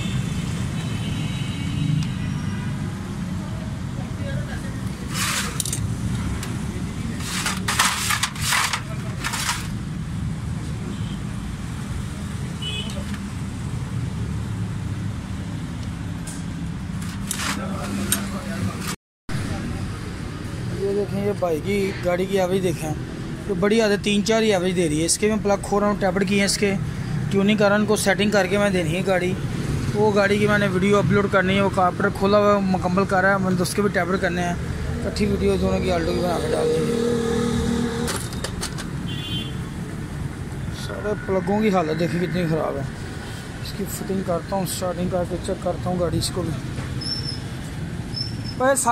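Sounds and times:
motor vehicles running: 2.8 - 10.8, 26.3 - 39.1, 39.8 - 48.9.

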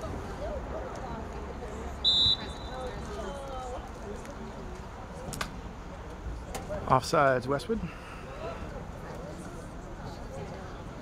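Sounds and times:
referee's whistle blown: 2.0 - 2.9.

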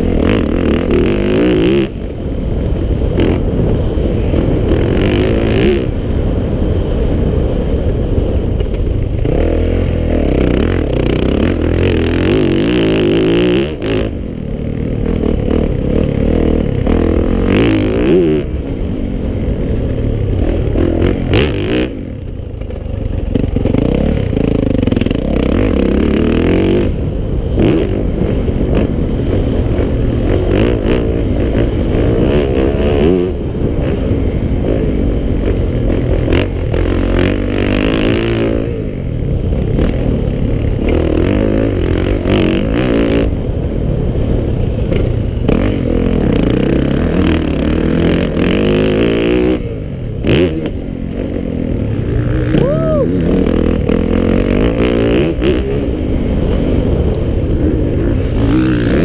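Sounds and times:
motocross bike engine revving: 0.0 - 6.4, 9.0 - 43.6, 44.8 - 59.0.

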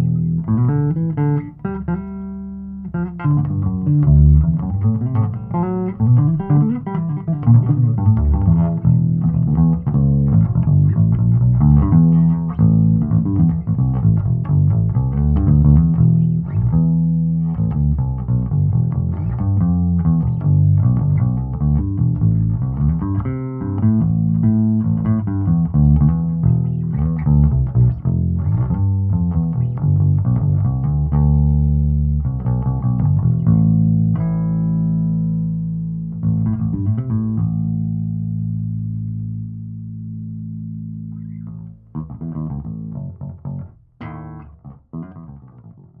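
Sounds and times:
electric bass notes: 0.0 - 46.0.

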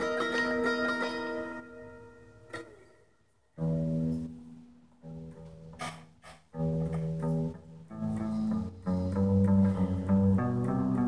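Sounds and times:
electric guitar chords ringing: 0.0 - 2.7, 3.6 - 5.8, 6.6 - 11.0.

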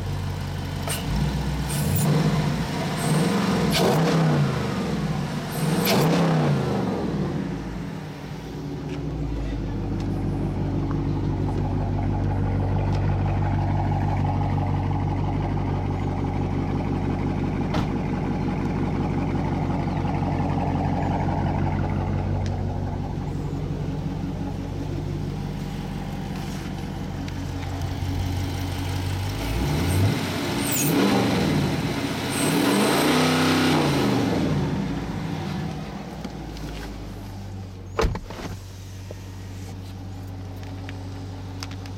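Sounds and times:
car engine revving and idling: 0.0 - 41.9.

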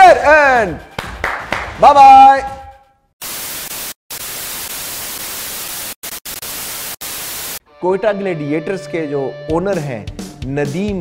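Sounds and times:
television static hiss: 3.2 - 7.6.

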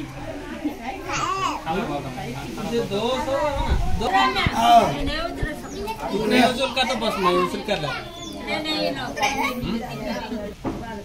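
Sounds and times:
group of people talking: 0.0 - 11.0.

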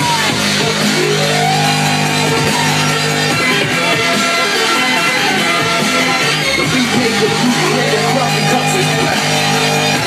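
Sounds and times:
loud dance music: 0.0 - 10.0.

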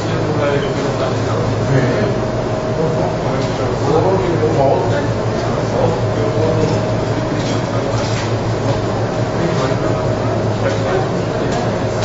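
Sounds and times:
room hum and hiss: 0.0 - 12.0.

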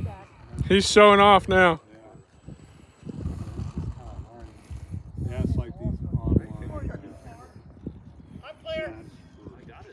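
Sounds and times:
men's voices: 0.6 - 7.6.

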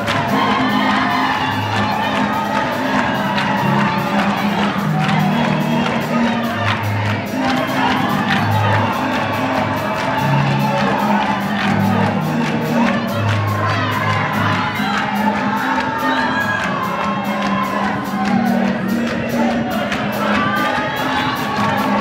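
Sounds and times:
crowd cheering: 0.0 - 22.0
crowd singing along: 0.0 - 22.0
gospel band playing: 0.0 - 22.0.

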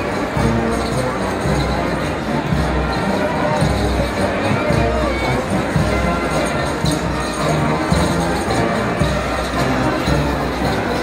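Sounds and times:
parade band music: 0.0 - 11.0
street crowd voices: 0.0 - 11.0.

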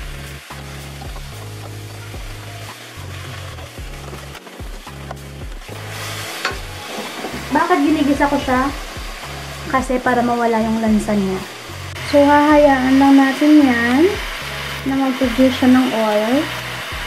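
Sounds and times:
pork sizzling in hot oil: 0.0 - 17.0.

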